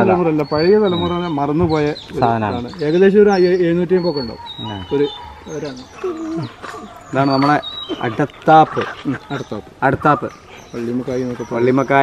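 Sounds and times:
high bird chirps: 0:00.0 - 0:12.0.

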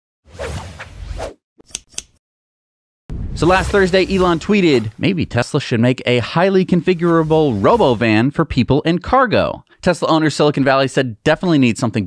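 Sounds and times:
whoosh: 0:03.1 - 0:05.1, 0:06.9 - 0:08.2.

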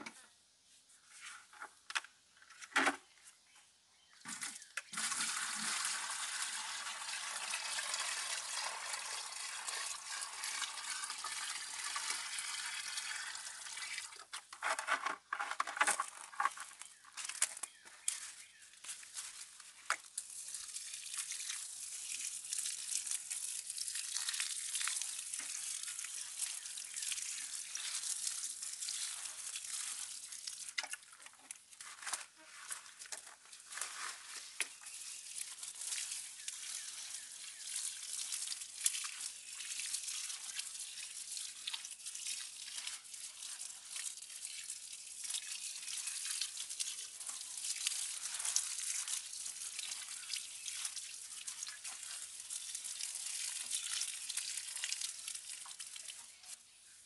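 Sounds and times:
watering can pouring onto soil: 0:04.2 - 0:56.7
liquid pouring into plastic can: 0:04.3 - 0:14.6, 0:19.9 - 0:31.4, 0:33.4 - 0:56.2
knocks and rustles of handling: 0:14.3 - 0:20.1.

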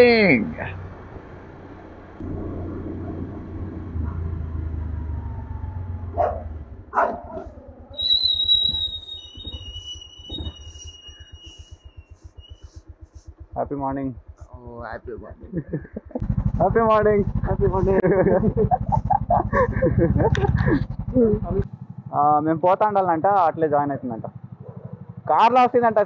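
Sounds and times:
motorcycle engine: 0:00.0 - 0:26.0
dog barking: 0:06.1 - 0:07.6, 0:24.6 - 0:25.2
thin high tone: 0:08.1 - 0:13.7.

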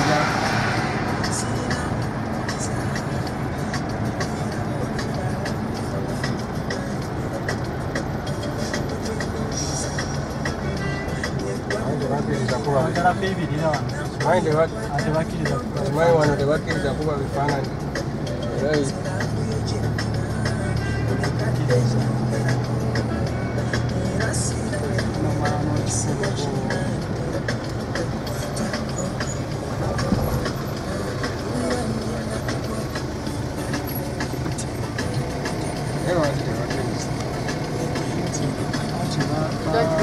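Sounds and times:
car engine and road hum: 0:00.0 - 0:40.0
music: 0:00.0 - 0:40.0
voices: 0:00.0 - 0:40.0.

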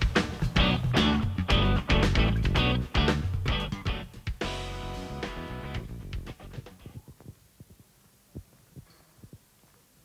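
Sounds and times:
background music: 0:00.0 - 0:06.9.

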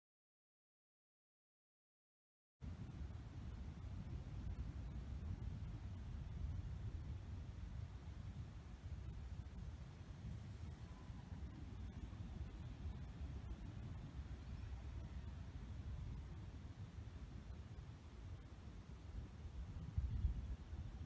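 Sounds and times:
wind buffeting microphone: 0:02.6 - 0:21.0.

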